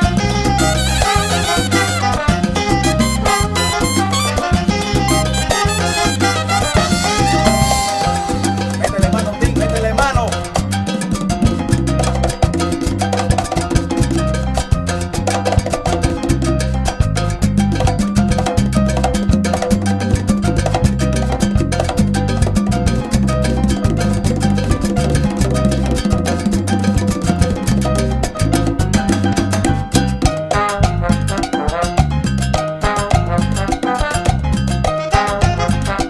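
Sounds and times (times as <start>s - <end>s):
instrumental salsa band: 0.0s - 36.0s.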